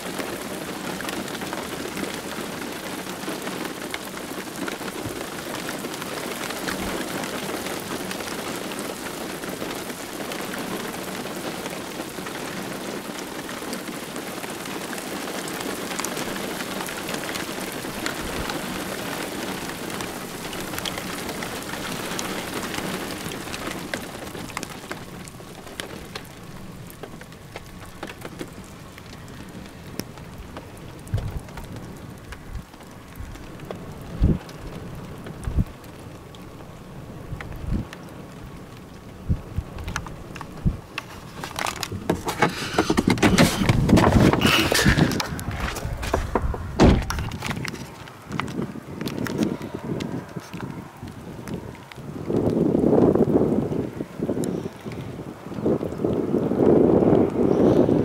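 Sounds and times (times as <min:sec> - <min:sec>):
rain drops hitting surface: 0:00.0 - 0:58.0
low thumps: 0:41.9 - 0:47.7.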